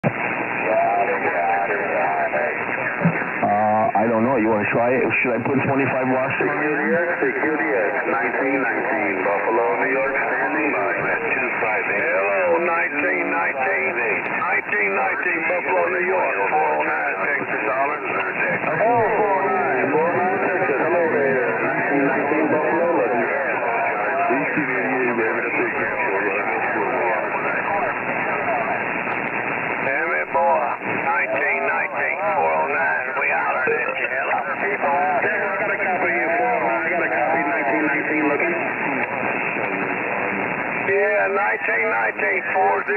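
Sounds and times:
muffled voices over radio: 0.0s - 42.9s
radio static hiss: 0.0s - 42.9s.

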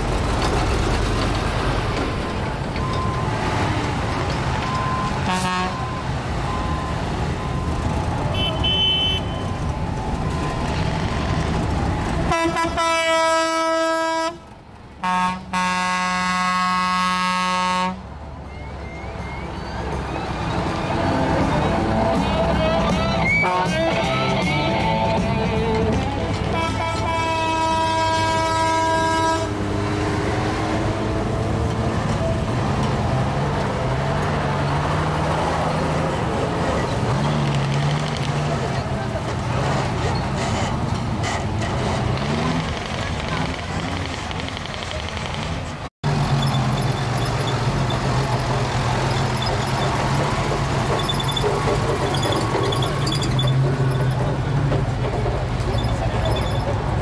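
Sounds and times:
heavy truck engines passing: 0.0s - 57.0s
truck horn blast: 5.2s - 6.0s, 8.3s - 9.4s, 12.3s - 14.4s, 15.0s - 18.0s, 23.3s - 24.0s, 26.5s - 29.8s.

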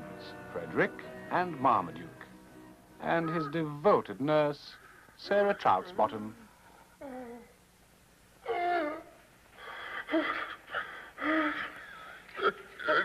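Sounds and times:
rasping breaths: 9.6s - 13.0s
man groaning: 12.4s - 13.0s.

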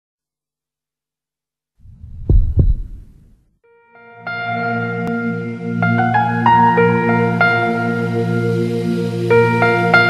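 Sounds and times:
deep thumps: 1.8s - 3.4s
low rumble: 1.8s - 3.4s
soft sustained musical tones: 3.7s - 10.0s.

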